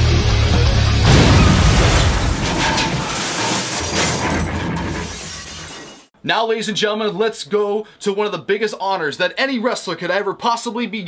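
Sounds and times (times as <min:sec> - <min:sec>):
glass shattering: 0:01.0 - 0:06.1.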